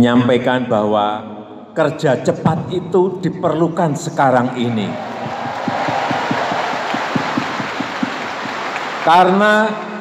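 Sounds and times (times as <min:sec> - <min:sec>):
audience applauding: 0:04.9 - 0:09.8.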